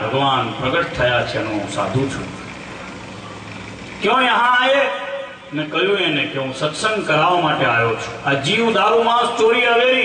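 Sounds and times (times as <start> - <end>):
background hiss and rumble: 0.0 - 10.0.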